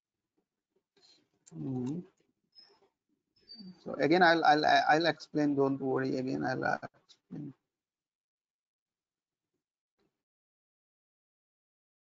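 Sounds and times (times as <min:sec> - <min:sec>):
faint mouth sounds: 0:01.5 - 0:02.0, 0:06.5 - 0:07.5
man humming: 0:01.6 - 0:02.0
man talking: 0:01.6 - 0:02.0, 0:03.9 - 0:07.5.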